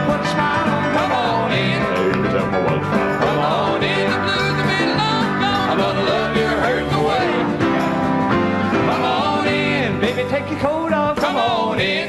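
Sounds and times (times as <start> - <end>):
voices singing: 0.0 - 7.9, 8.7 - 12.0
upbeat country band music: 0.0 - 12.0.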